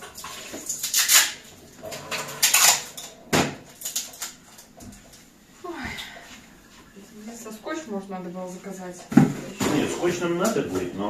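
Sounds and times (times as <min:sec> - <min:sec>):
packing tape pulled off roll: 0:00.7 - 0:01.4, 0:02.3 - 0:03.0.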